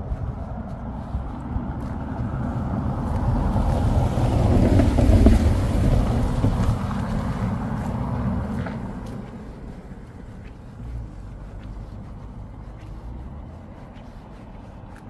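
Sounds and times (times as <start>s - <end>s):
car passing by: 0.0s - 15.0s.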